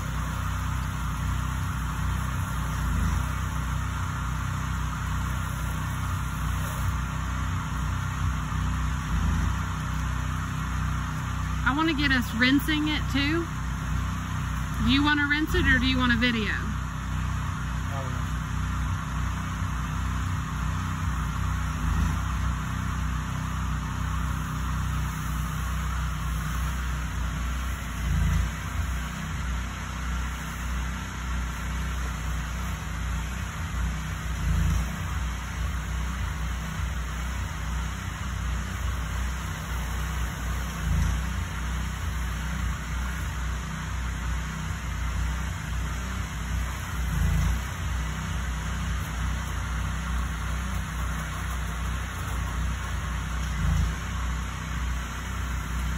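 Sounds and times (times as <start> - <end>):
small pump engine running: 0.0 - 55.9.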